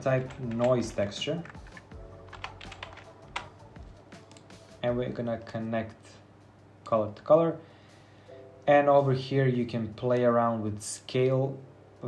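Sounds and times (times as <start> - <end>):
keyboard typing clicks: 0.2 - 3.5.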